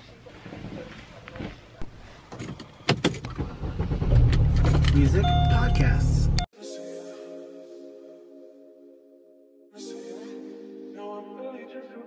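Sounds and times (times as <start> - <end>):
car engine rumble inside cabin: 3.8 - 6.5.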